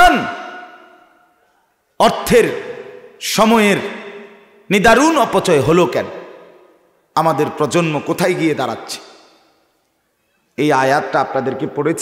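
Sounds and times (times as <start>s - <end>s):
man speaking over public address: 0.0s - 0.4s, 2.0s - 6.3s, 7.1s - 9.1s, 10.6s - 12.0s.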